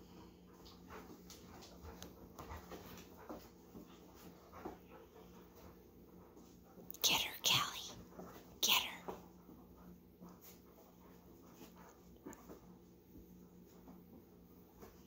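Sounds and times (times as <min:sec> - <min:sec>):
dogs scuffling in play: 0:00.1 - 0:06.9, 0:09.2 - 0:15.0.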